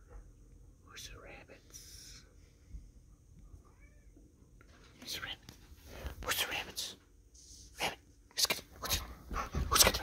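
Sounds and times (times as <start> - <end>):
person whispering: 0.8 - 2.4, 5.0 - 10.0.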